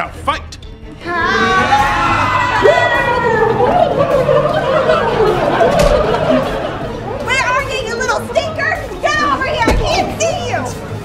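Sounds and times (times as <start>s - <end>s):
people yelling and shouting: 0.9s - 10.8s.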